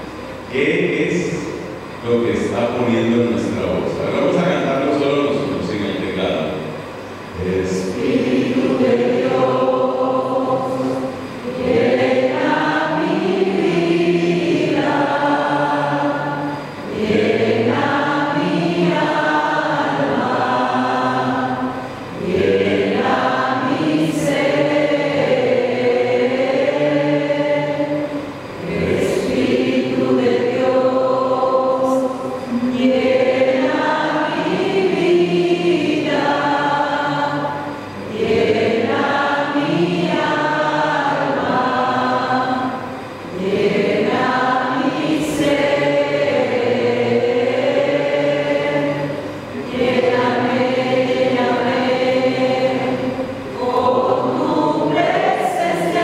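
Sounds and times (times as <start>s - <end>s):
group singing worship song: 0.0s - 56.0s.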